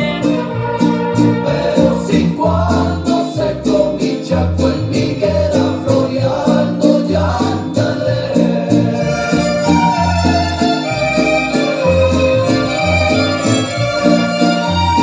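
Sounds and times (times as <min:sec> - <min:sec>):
repeating bass line: 0:00.0 - 0:15.0
strings: 0:00.0 - 0:15.0.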